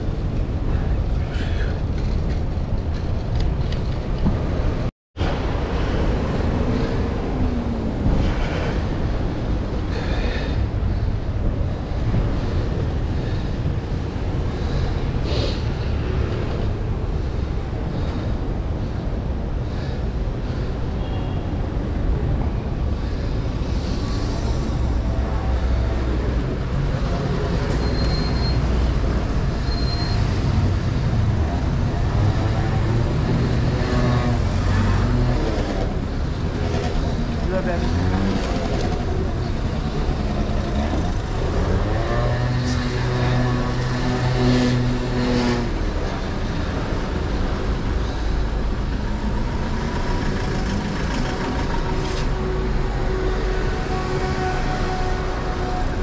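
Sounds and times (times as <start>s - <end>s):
road traffic engines rumbling: 0.0s - 56.0s.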